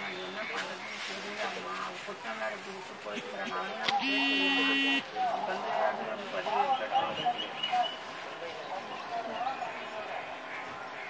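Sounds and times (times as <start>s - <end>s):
faint background voices: 0.0s - 11.0s.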